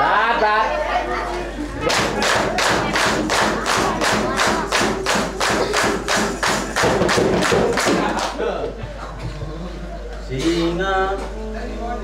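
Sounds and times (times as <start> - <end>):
group clapping in unison: 1.8 - 8.4.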